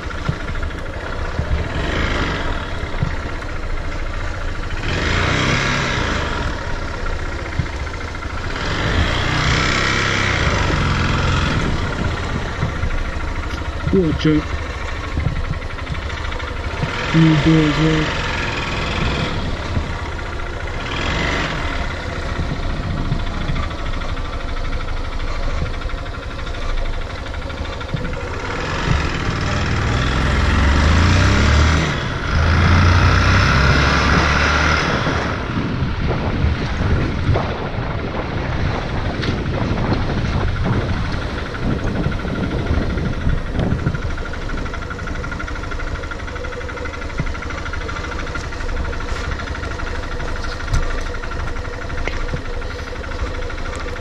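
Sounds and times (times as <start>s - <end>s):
vehicle engine running: 0.0s - 54.0s.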